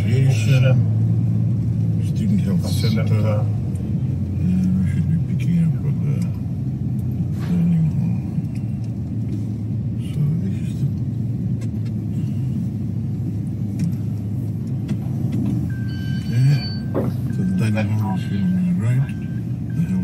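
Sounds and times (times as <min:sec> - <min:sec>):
car engine rumble: 0:00.0 - 0:20.0.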